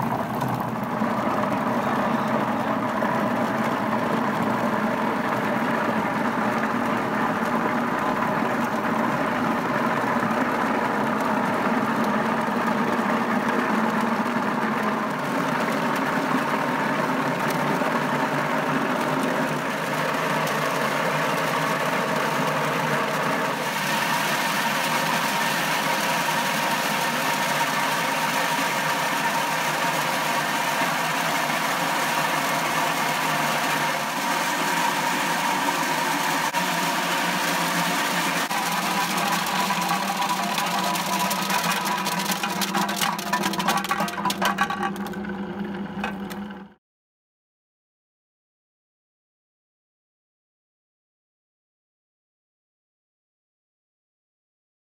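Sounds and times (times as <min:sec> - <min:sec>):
electric motor spinning drum: 0:00.0 - 0:46.8
walnuts tumbling and scraping: 0:38.5 - 0:45.3.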